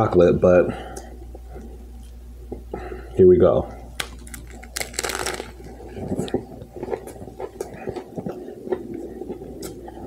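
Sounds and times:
crunchy sandwich bite: 3.9 - 9.9
close-up chewing with crunches: 3.9 - 10.0.

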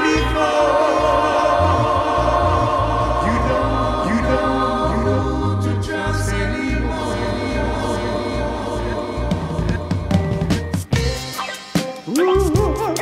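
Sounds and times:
sung vocal harmonies: 0.0 - 11.4
reggae music with bass line: 0.0 - 13.0.

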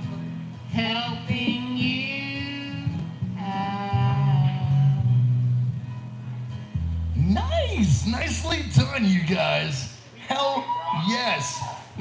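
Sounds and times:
person singing karaoke: 0.0 - 5.8.

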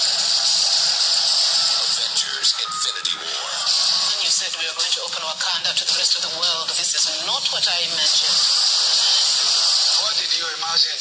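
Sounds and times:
faint music: 0.0 - 11.0
loud steady hiss: 7.9 - 11.0.

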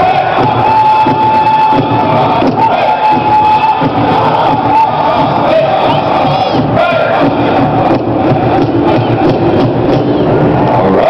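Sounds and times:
crowd noise: 0.0 - 11.0
large drum beating: 0.0 - 11.0.

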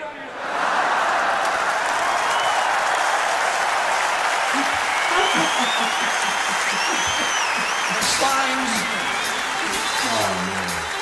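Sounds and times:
stadium crowd cheering: 0.0 - 11.0
shrill whistles: 2.1 - 2.9, 4.6 - 9.9.

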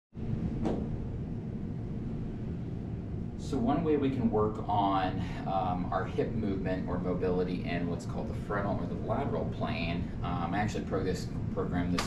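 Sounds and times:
low room hum: 0.2 - 12.0
short knock: 0.6 - 0.9.

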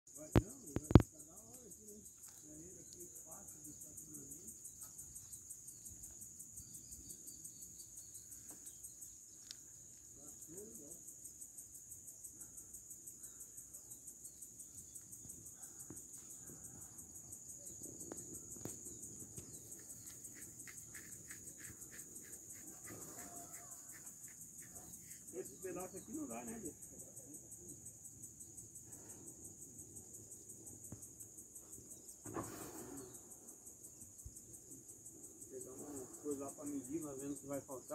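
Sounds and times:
high-pitched insect trill: 0.1 - 37.9.

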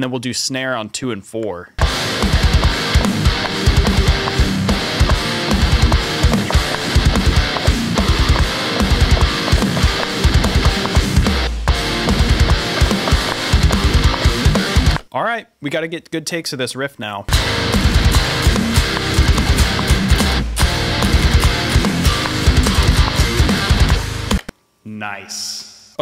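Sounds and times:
bass guitar: 1.8 - 15.1, 17.3 - 24.5
distorted rhythm guitars: 1.8 - 15.1, 17.3 - 24.5
programmed drums: 1.8 - 15.1, 17.3 - 24.5.

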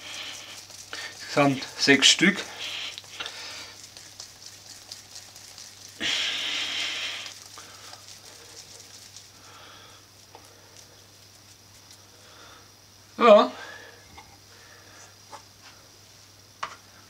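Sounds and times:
hands rubbing together: 0.0 - 12.2
faint crackling: 0.0 - 12.6.

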